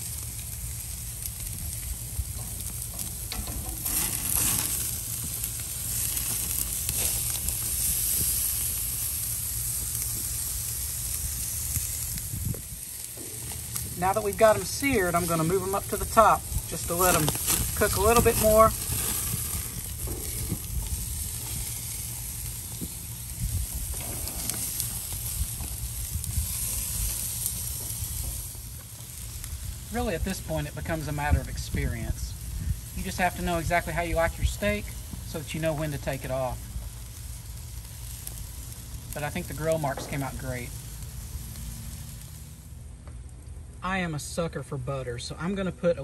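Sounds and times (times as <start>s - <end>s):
steaks sizzling on a grill: 0.0s - 42.9s
low steady rumble: 0.0s - 46.0s
man talking: 13.9s - 18.8s, 29.9s - 32.4s, 33.0s - 36.6s, 39.2s - 40.7s, 43.8s - 46.0s.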